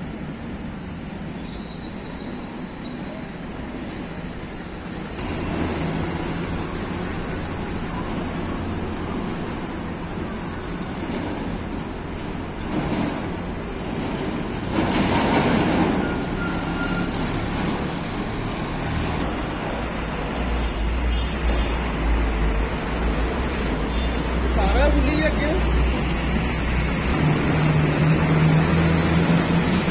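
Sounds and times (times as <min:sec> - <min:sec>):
highway traffic passing: 0:03.2 - 0:29.9
loud vehicles passing: 0:03.6 - 0:29.9.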